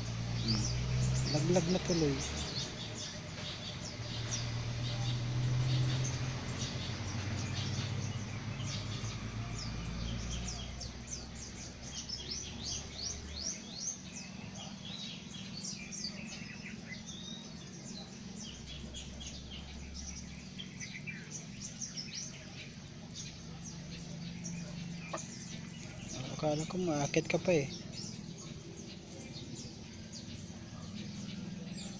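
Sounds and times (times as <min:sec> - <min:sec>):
small birds chirping: 0:00.0 - 0:31.9.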